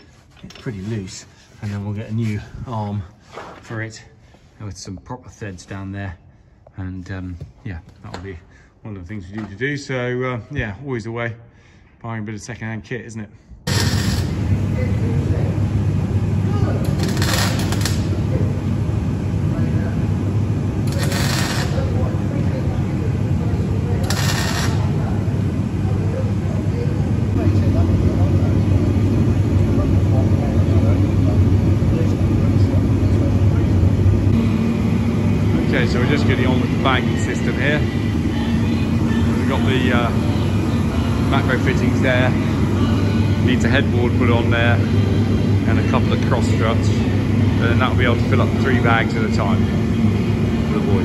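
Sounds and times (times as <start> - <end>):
low machine hum: 0.0 - 51.0
arc welding crackling: 13.7 - 14.6, 16.8 - 18.4, 20.8 - 22.1, 23.8 - 25.1.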